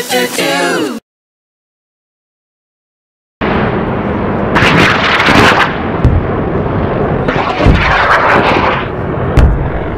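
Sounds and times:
electric crackling and zapping: 4.6 - 5.9, 7.3 - 9.0
deep thuds: 9.3 - 9.9.

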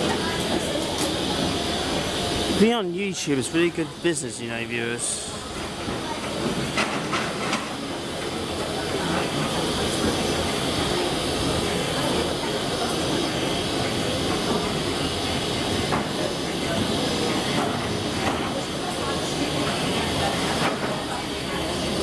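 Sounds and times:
steam locomotive hissing steam: 0.0 - 22.0.

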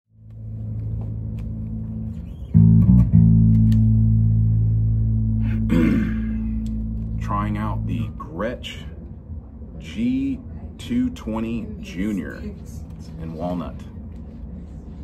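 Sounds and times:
electric bass notes: 0.1 - 9.3
man speaking: 7.2 - 8.9.

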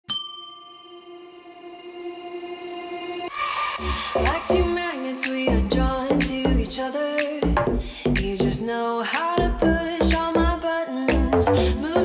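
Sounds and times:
bell-like ding: 0.0 - 1.3.

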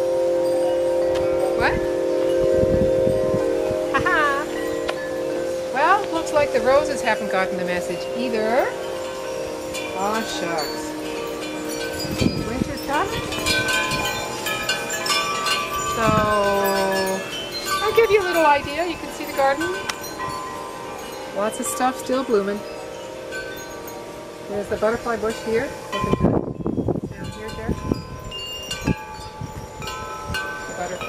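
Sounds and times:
wind chimes ringing: 0.0 - 31.0.

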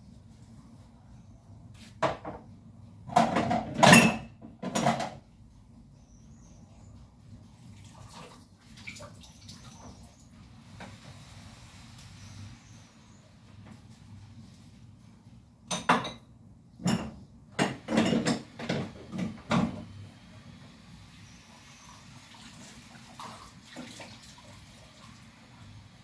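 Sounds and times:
dishes clattering: 3.1 - 5.2, 15.7 - 19.8
running water at sink: 7.6 - 12.8, 17.6 - 26.0.

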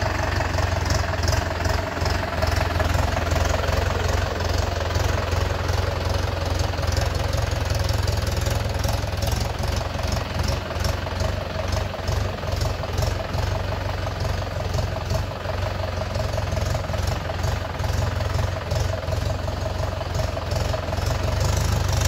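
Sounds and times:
tractor diesel engine under load: 0.0 - 22.0.

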